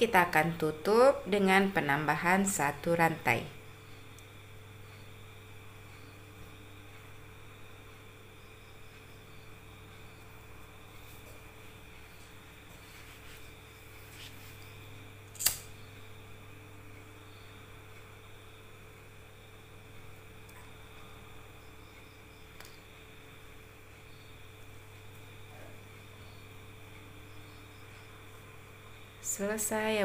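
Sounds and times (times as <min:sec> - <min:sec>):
low room hum: 0:00.0 - 0:30.0
sharp click: 0:15.3 - 0:15.8.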